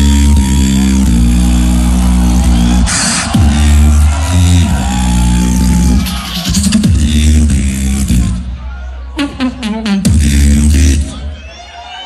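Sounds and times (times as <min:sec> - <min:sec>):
beatboxing deep bass: 0:00.0 - 0:08.6, 0:09.2 - 0:11.4.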